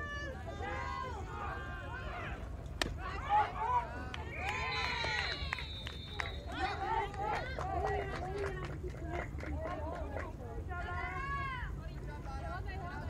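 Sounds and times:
players and spectators shouting: 0.0 - 8.1.

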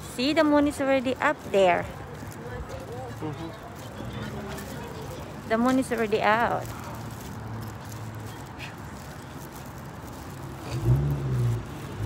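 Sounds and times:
low hum of cars: 0.0 - 12.0.

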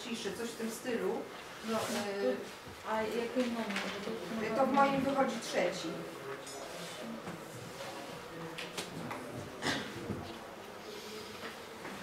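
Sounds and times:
paper rustling: 3.1 - 4.9.

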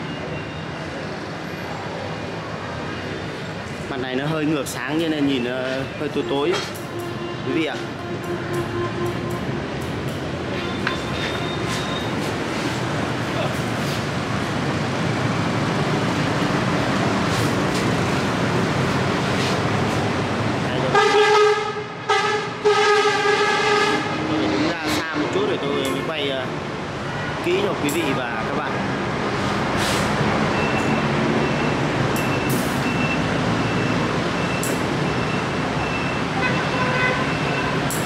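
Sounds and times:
vehicle horn: 6.9 - 9.6, 20.8 - 24.2, 36.3 - 37.9.

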